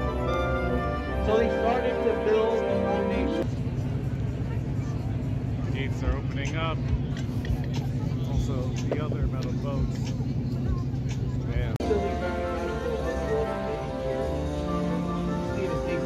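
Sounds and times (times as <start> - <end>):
boat engine humming: 0.0 - 16.0
passengers chattering: 0.0 - 16.0.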